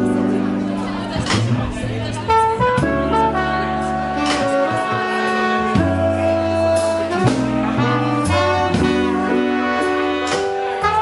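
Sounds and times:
jazz band playing: 0.0 - 11.0.

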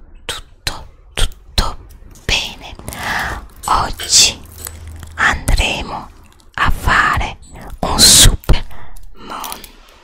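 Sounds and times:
breathy mouth sounds: 0.2 - 10.0.

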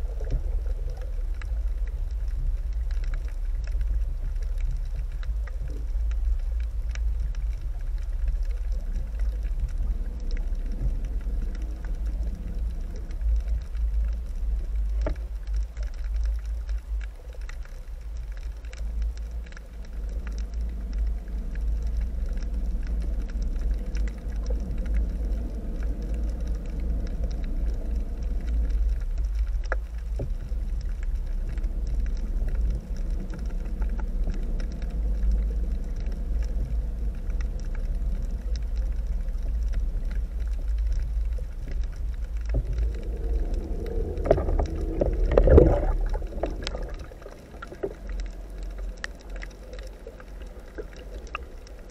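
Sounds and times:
underwater current rumble: 0.0 - 51.9.

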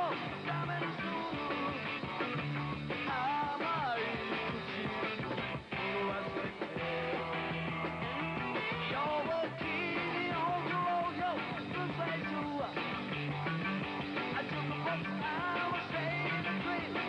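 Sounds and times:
guitar melody with bending notes: 0.0 - 17.0
rock and roll band playing: 0.0 - 17.0.

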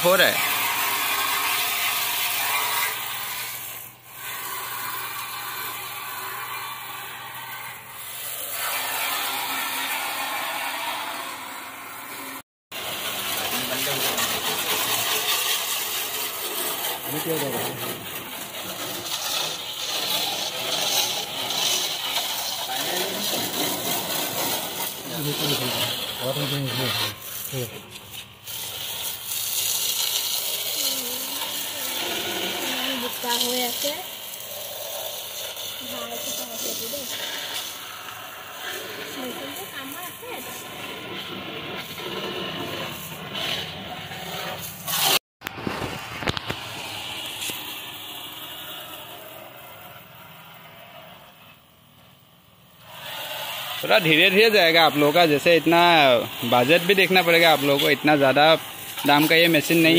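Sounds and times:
pressure washer spray hissing: 0.0 - 51.4, 52.7 - 59.9.

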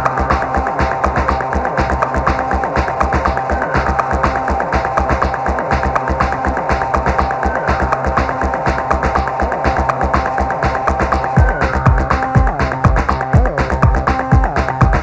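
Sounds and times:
sustained bass line: 0.0 - 15.0
ticking hi-hats: 0.0 - 15.0
kick drum: 11.0 - 15.0.

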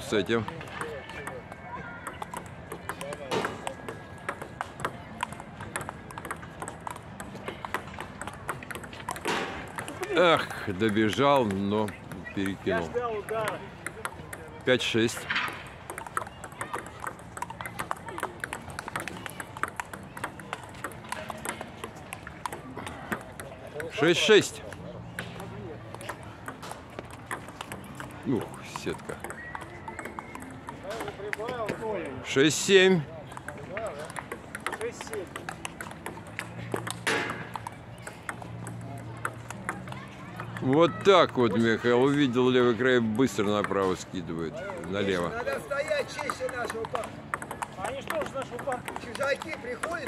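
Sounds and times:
faint voices: 0.0 - 50.0
table tennis from neighbouring tables: 0.0 - 50.0
table tennis ball clicking: 0.4 - 41.6, 43.2 - 50.0.

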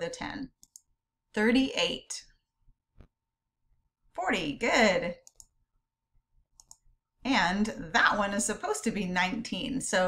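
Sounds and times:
faint computer mouse clicks: 0.6 - 0.9, 5.2 - 5.6, 6.6 - 6.8.

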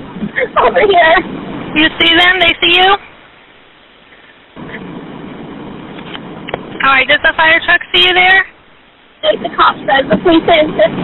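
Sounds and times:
rush of background noise: 0.0 - 11.0.

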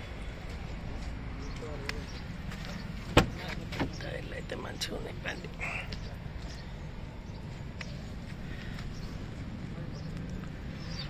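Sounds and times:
car door clunk: 3.1 - 4.0.

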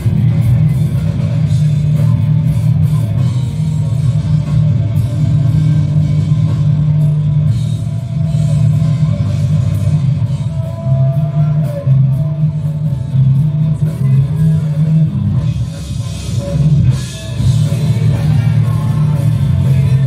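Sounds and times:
loud rock band music: 0.0 - 20.0.

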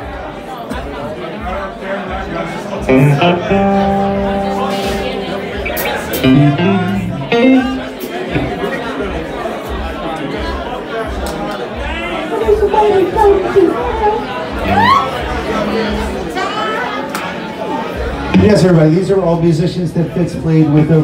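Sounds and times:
loud crowd chatter: 0.0 - 21.0
live rock band playing: 2.4 - 9.0, 12.3 - 16.5, 18.3 - 19.0.

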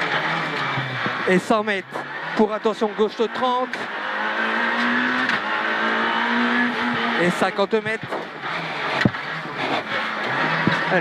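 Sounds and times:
car engine: 0.0 - 11.0
road noise inside car: 0.0 - 11.0.

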